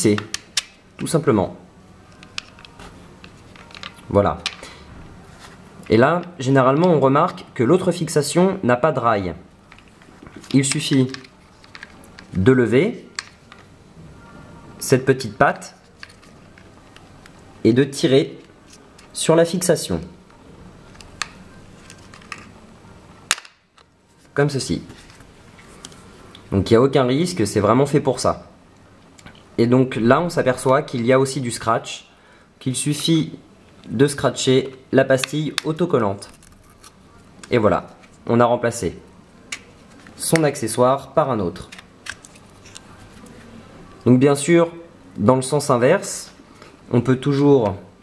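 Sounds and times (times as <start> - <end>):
plastic camera handling noise: 2.2 - 4.6, 9.7 - 12.3, 20.9 - 22.5, 41.7 - 43.4.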